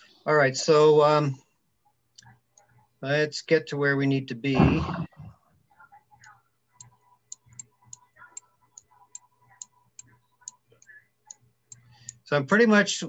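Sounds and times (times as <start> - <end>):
computer mouse clicking: 6.2 - 12.2.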